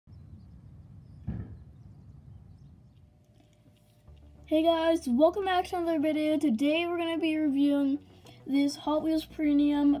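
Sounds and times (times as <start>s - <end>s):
low outdoor rumble: 0.1s - 10.0s
short thump: 1.2s - 1.7s.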